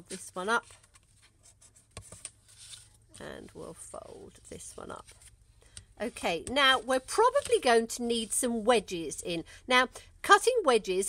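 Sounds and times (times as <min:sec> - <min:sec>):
soft rubbing: 0:00.0 - 0:08.4
cardstock handling: 0:06.4 - 0:07.7.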